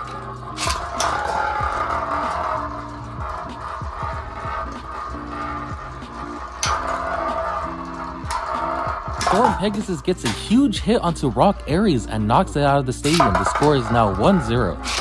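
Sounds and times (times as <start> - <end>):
background music with held notes: 0.0 - 15.0
spinning tops colliding clack: 0.0 - 15.0
spinning tops whirring and scraping: 0.0 - 15.0.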